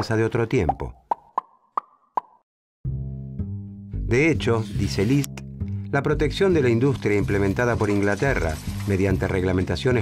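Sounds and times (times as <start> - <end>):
pop sound effects: 0.7 - 2.4.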